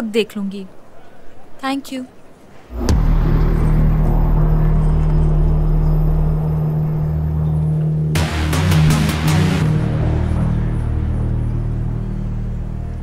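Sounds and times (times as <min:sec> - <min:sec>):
deep bass drone: 0:02.7 - 0:13.0
musical hit: 0:02.7 - 0:13.0.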